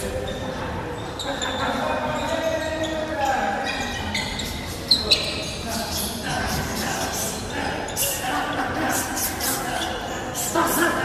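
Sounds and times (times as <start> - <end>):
voices in background: 0.0 - 11.0.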